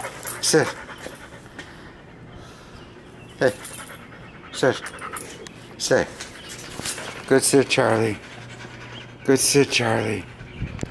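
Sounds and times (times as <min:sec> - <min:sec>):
dog panting quietly: 0:00.0 - 0:10.9.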